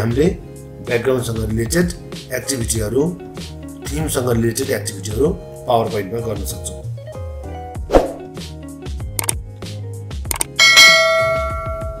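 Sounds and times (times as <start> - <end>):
background music with low beat: 0.0 - 12.0
quick clicks: 9.2 - 9.4, 10.3 - 10.5
bell ding: 10.6 - 12.0.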